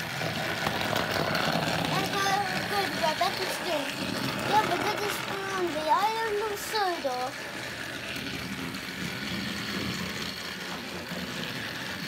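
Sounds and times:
small electric motor whirring: 0.0 - 12.0
toy wheels rattling on track: 0.0 - 12.0.

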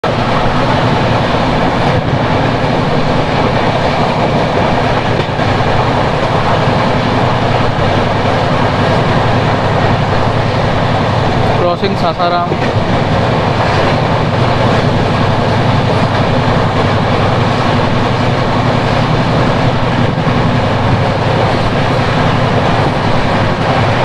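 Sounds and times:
rushing wind: 0.0 - 24.0
train wheels rolling on rails: 0.0 - 24.0
person speaking: 11.4 - 12.8.

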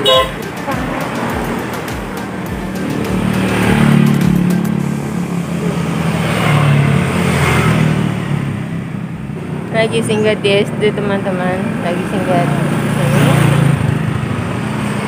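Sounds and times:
passing vehicles rumbling: 0.0 - 15.0.

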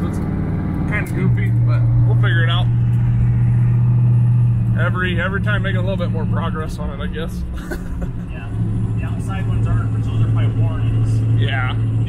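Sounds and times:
car engine droning in cabin: 0.0 - 12.0.

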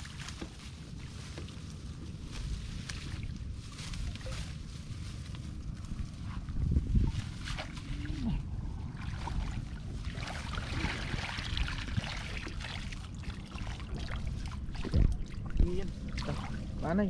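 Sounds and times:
branches and leaves rustling: 0.0 - 17.0
water sloshing and splashing: 0.0 - 17.0.

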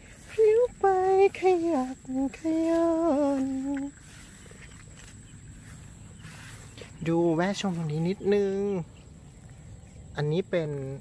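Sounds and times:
woman singing: 0.0 - 4.1
faint background noise: 0.0 - 11.0.

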